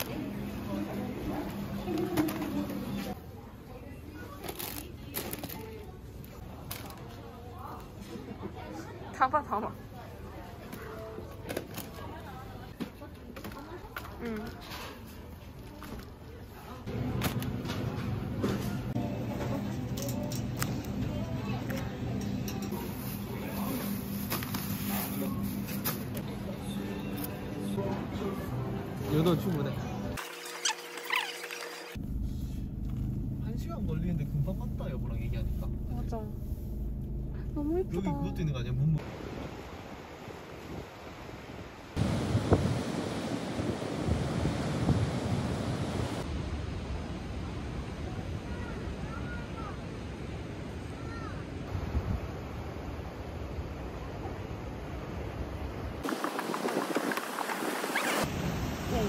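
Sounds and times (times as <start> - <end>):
plastic bags rustling: 4.3 - 7.2, 22.8 - 26.2
wind on microphone: 42.0 - 46.2, 56.0 - 58.3
surf breaking over rocks: 42.0 - 46.7, 56.0 - 59.0
waves washing among rocks: 56.0 - 59.0.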